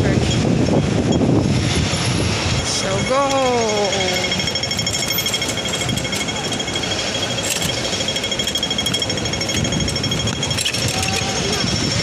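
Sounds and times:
street hubbub: 0.0s - 12.0s
pedestrian crossing signal ticking: 2.6s - 12.0s.

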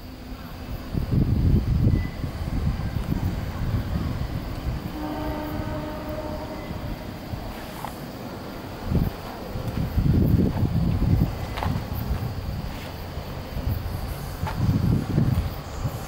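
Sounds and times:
train horn: 4.8s - 7.7s.

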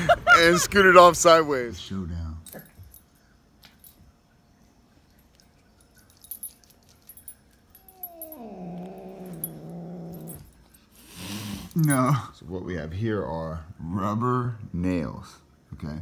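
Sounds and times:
cat growling: 7.8s - 10.5s.

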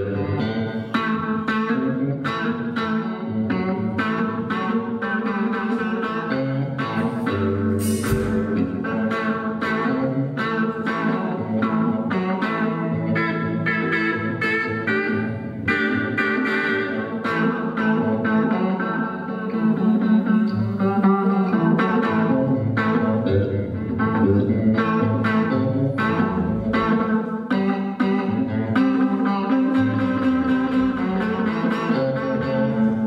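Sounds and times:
electric guitar: 0.0s - 33.0s
drums: 6.8s - 10.0s.

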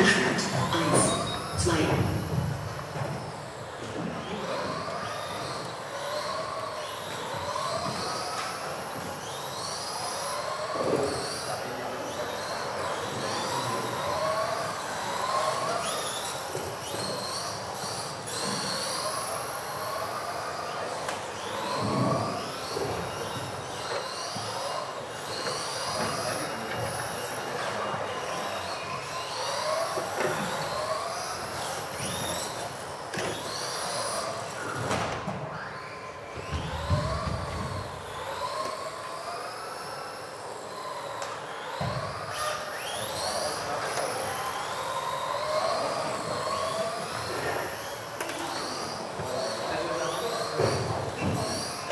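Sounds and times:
rc car electric motors whining: 0.0s - 51.9s.

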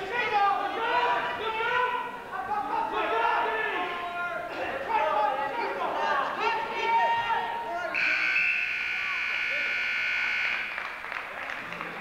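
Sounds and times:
scoreboard buzzer: 8.0s - 10.8s.

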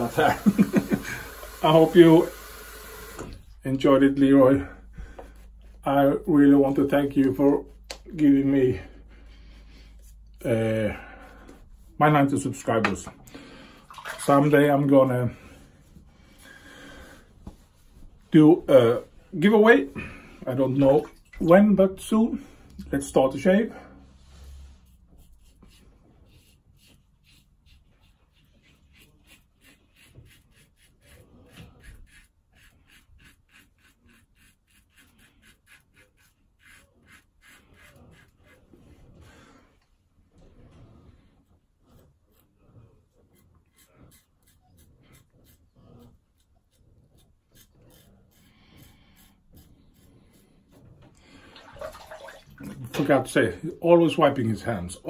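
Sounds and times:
razor scraping stubble: 24.8s - 39.2s, 41.8s - 50.9s.

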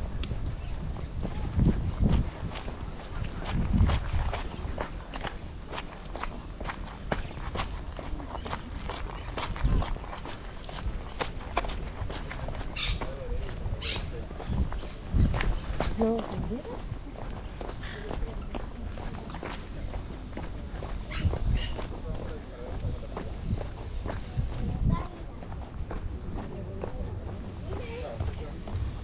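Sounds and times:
footsteps on dirt path: 0.0s - 29.0s.

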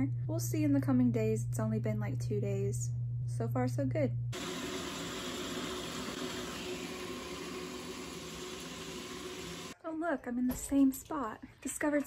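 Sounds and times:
faint hum: 0.0s - 4.6s.

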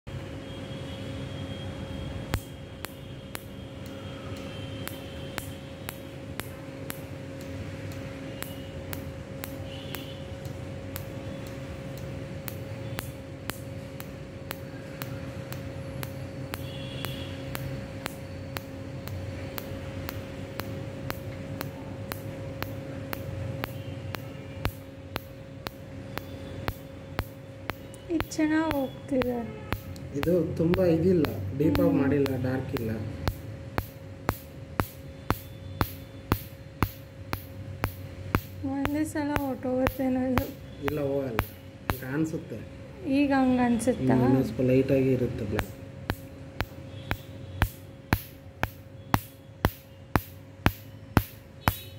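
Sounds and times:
machine cooling hum: 0.1s - 51.9s
laser pulses snapping: 2.3s - 42.4s, 45.6s - 51.9s.

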